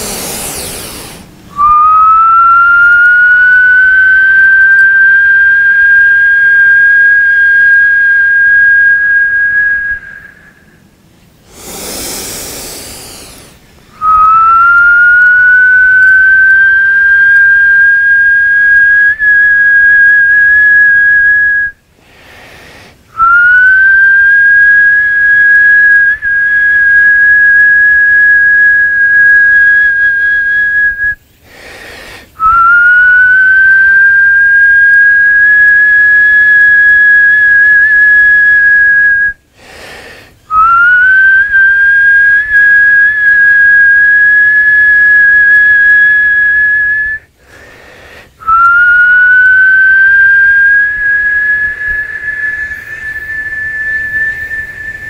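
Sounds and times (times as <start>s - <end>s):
high steady whistling: 0.0s - 55.0s.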